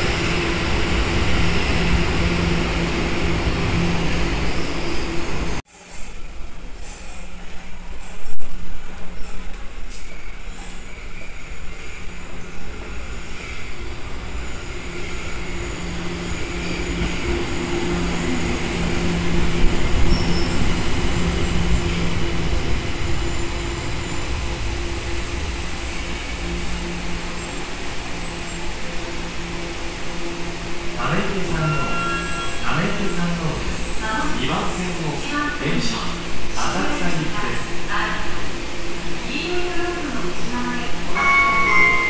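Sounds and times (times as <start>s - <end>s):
subway train pulling to a stop: 0.0s - 42.0s.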